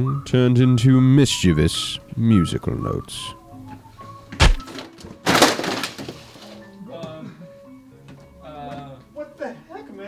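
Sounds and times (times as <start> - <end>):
books crashing onto hard floor: 4.4 - 6.6.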